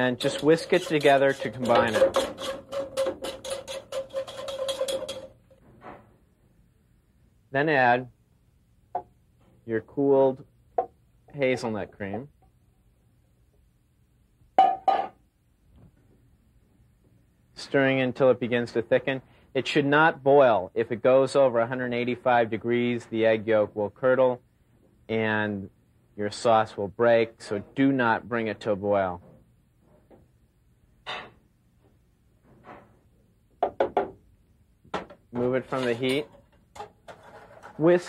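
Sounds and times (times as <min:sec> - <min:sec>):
soft scrape in saucepan: 0:00.0 - 0:05.2, 0:35.4 - 0:36.4, 0:37.1 - 0:38.0
kitchenware clinking: 0:00.2 - 0:05.4, 0:35.0 - 0:37.9.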